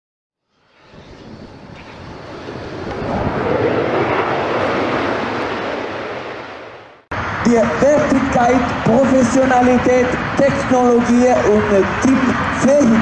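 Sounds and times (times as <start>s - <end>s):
jet aircraft passing overhead: 0.5s - 13.0s.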